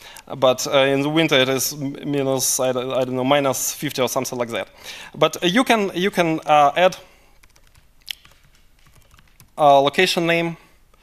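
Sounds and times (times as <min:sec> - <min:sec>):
typing on laptop keyboard: 0:07.4 - 0:09.6.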